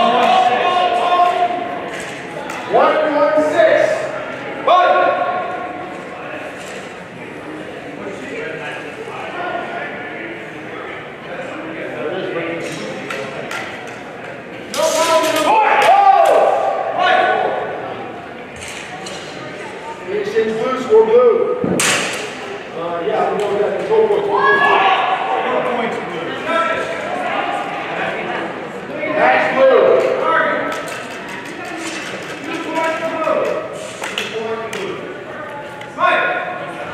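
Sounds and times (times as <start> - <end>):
loud drawn-out shout: 0.0 - 1.7, 15.4 - 17.8, 24.3 - 25.7
chatter of voices in a hall: 0.0 - 36.9.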